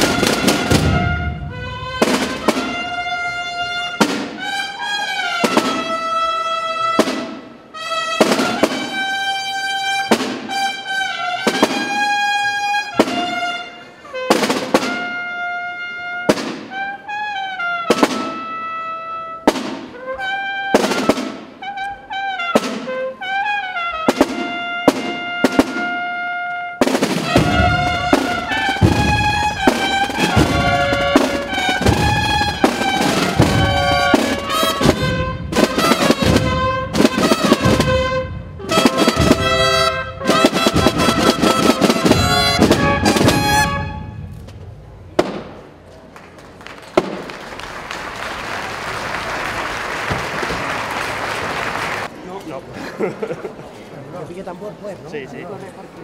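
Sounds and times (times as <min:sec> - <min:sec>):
brass band playing: 0:00.0 - 0:44.4
sharp cracks: 0:44.3 - 0:48.2
applause: 0:46.1 - 0:52.2.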